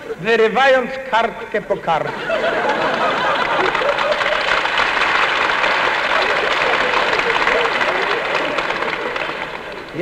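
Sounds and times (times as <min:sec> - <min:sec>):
audience laughter: 0:02.0 - 0:10.0
audience applause: 0:02.5 - 0:10.0.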